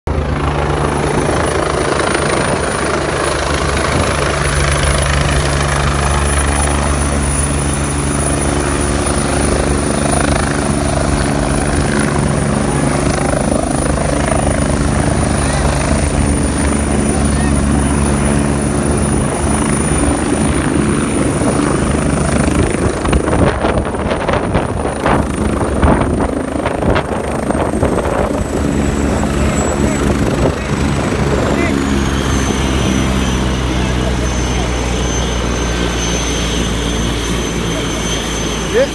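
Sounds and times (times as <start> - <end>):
helicopter rotor and engine thrum: 0.1 - 38.9
crowd voices: 11.8 - 19.4, 29.2 - 38.9.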